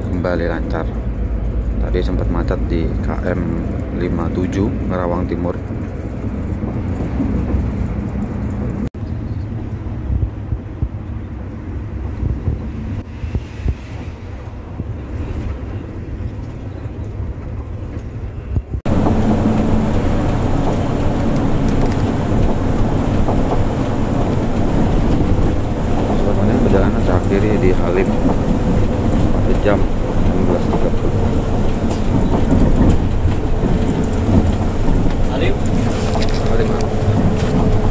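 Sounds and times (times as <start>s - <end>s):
coach engine drone and road noise: 0.0s - 37.9s.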